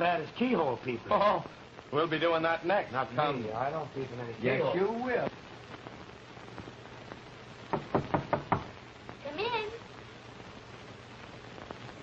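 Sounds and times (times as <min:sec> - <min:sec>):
film soundtrack hiss: 0:00.0 - 0:12.0
knuckles knocking on a door: 0:07.7 - 0:08.7.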